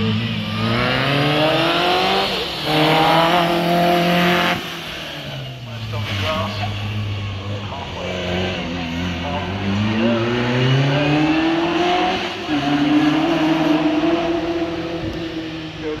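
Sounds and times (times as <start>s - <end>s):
racing car engine accelerating: 0.0s - 16.0s.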